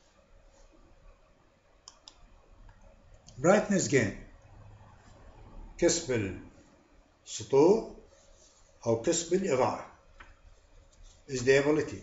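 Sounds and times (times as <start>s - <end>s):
faint sharp clicks: 1.8s - 3.4s.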